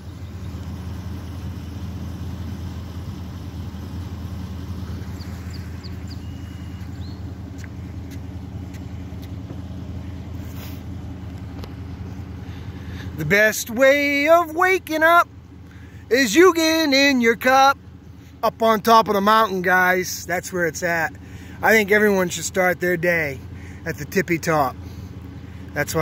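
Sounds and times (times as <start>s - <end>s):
low rumble: 0.0s - 13.3s
faint high chirps: 5.2s - 7.3s.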